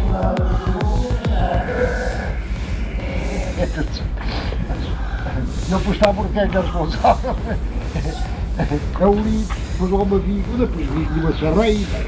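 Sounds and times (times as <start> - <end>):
constant low rumble: 0.0 - 12.0
indistinct talking: 0.0 - 12.0.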